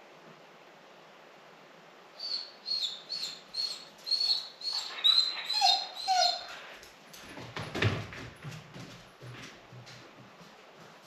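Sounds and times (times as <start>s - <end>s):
dog whimpering: 2.2s - 6.6s.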